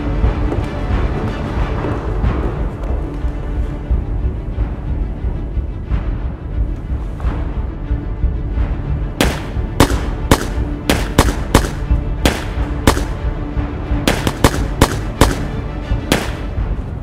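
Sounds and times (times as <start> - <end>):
dramatic music score: 0.0 - 17.0
handgun shots: 9.2 - 13.2, 14.1 - 15.5, 16.1 - 16.5.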